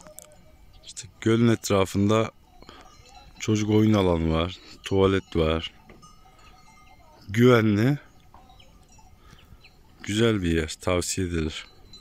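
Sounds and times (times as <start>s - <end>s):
distant bird calls: 0.0s - 10.4s.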